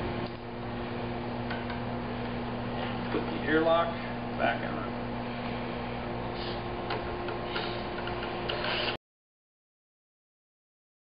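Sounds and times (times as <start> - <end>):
steady background hum: 0.0 - 9.0.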